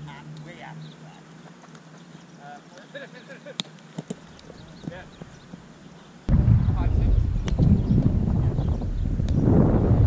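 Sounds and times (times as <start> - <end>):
wind rumble on microphone: 6.3 - 10.0.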